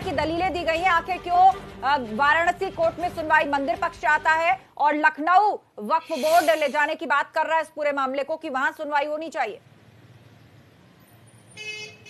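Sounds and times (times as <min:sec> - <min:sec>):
faint street background: 0:00.0 - 0:12.0
vehicle horn honk: 0:11.6 - 0:12.0.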